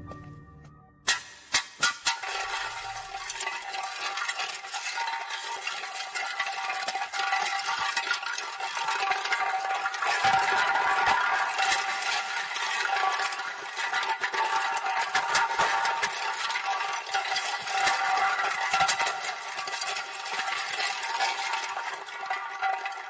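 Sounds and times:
glass bottle rolling on concrete: 0:01.1 - 0:23.0.

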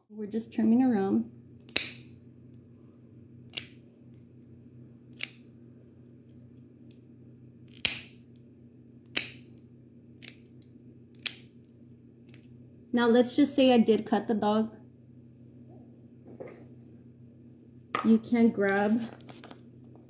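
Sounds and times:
nail clippers clipping dog nails: 0:01.6 - 0:02.1, 0:03.5 - 0:03.8, 0:05.1 - 0:05.5, 0:07.7 - 0:08.2, 0:09.0 - 0:09.6, 0:10.2 - 0:11.6.

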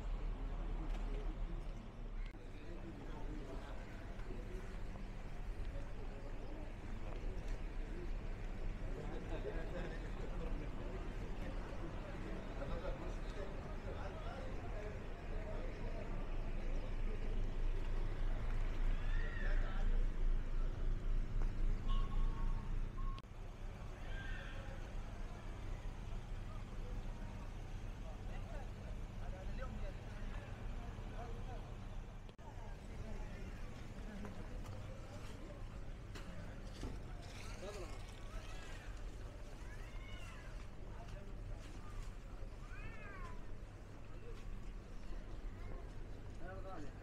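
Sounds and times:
faint voices of passers-by: 0:00.0 - 0:47.0
low street rumble: 0:00.0 - 0:47.0.

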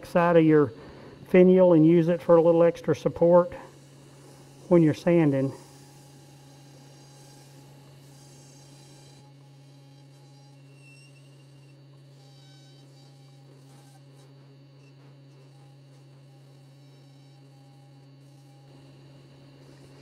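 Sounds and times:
wood lathe humming: 0:00.0 - 0:20.0
sandpaper on spinning wood: 0:02.0 - 0:18.7.

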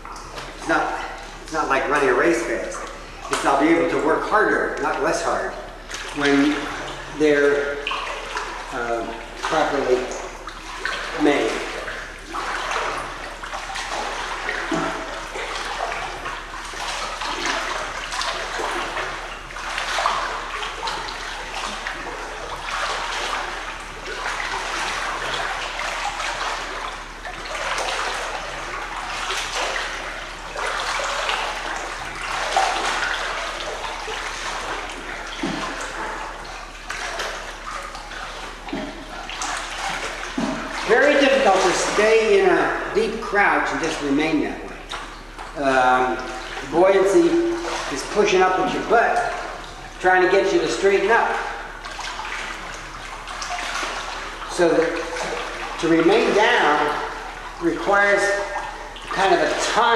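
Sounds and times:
pool water sloshing and splashing: 0:00.0 - 0:59.9.

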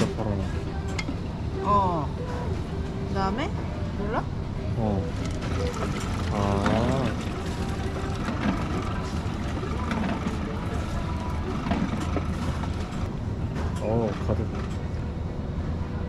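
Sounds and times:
juicer machine humming: 0:05.0 - 0:14.8
juice filling a bottle: 0:05.1 - 0:13.0
juicer clicks: 0:05.2 - 0:13.1.

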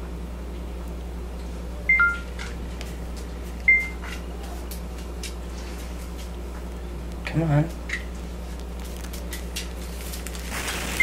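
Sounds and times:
short electronic beeps: 0:01.9 - 0:02.2.

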